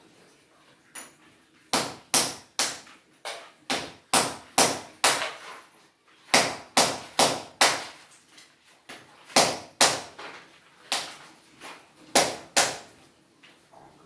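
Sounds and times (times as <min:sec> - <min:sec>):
hammer striking metal frame: 0:01.7 - 0:05.4, 0:06.3 - 0:08.0.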